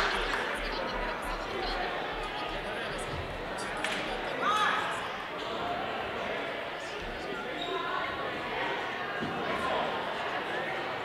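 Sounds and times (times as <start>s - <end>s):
echoing chatter in a gym: 0.0s - 11.0s.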